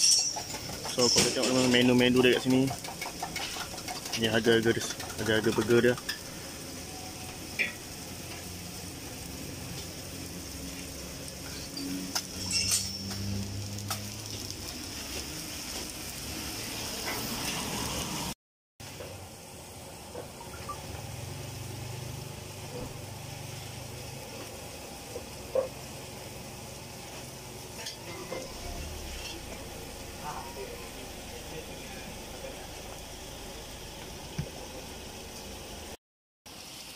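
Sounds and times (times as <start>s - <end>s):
utensils clinking: 0.0s - 6.3s, 11.4s - 13.4s
food sizzling on a griddle: 0.0s - 36.9s.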